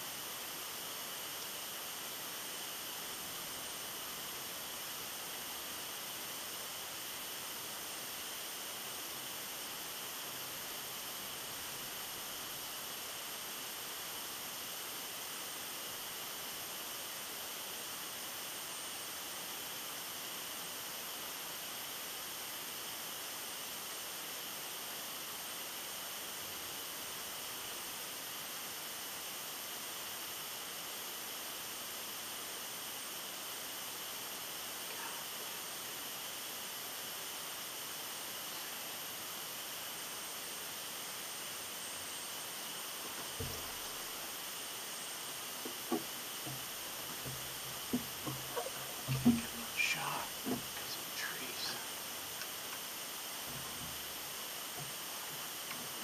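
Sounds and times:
steady high hiss: 0.0 - 56.0.

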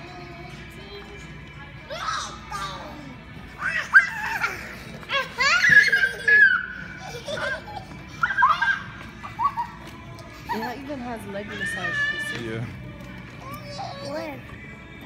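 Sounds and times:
background music: 0.0 - 15.0
children laughing and squealing: 1.9 - 10.7.

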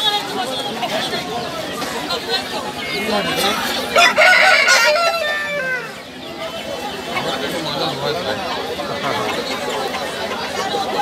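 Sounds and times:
crowd chatter: 0.0 - 11.0
rooster crowing: 3.9 - 6.0.

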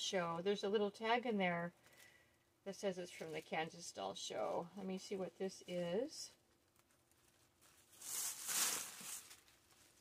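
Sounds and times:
plastic bag rustling and crinkling: 3.0 - 10.0.

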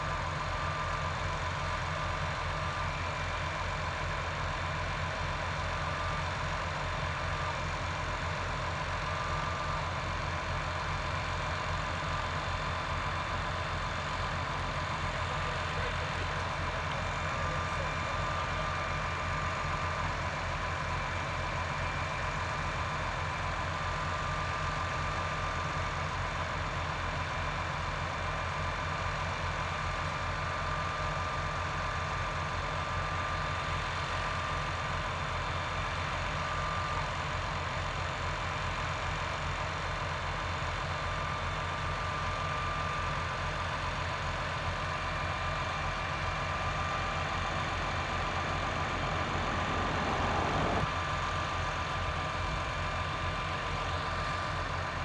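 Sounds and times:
diesel engines idling: 0.0 - 55.0
thin high whine: 46.9 - 51.0.

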